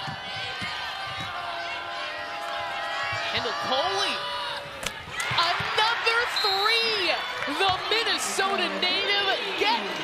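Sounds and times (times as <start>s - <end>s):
crowd chatter and shouting: 0.0s - 10.0s.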